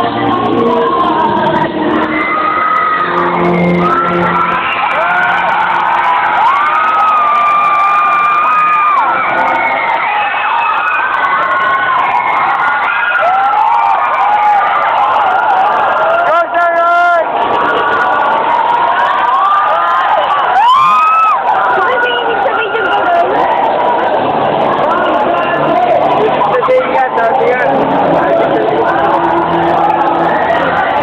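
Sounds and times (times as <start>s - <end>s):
crowd cheering and whooping: 0.0s - 31.0s
low music: 23.4s - 31.0s.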